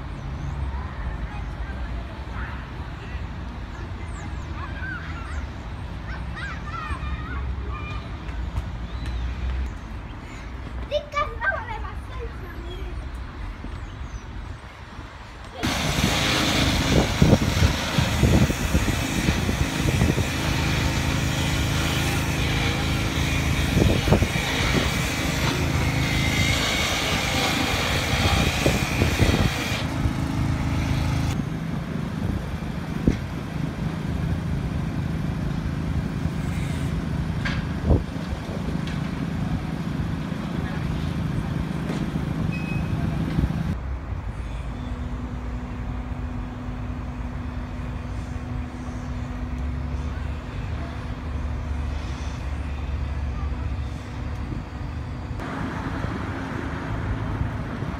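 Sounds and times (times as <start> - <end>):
outdoor street noise: 0.0 - 57.9
vehicle engines humming: 0.0 - 57.9.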